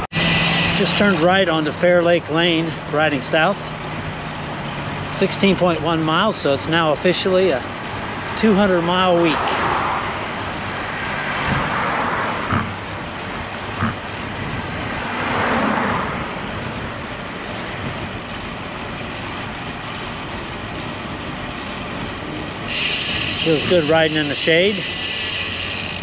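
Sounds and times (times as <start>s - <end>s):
car passing: 7.7s - 17.1s
wind rush on camera: 9.4s - 23.4s.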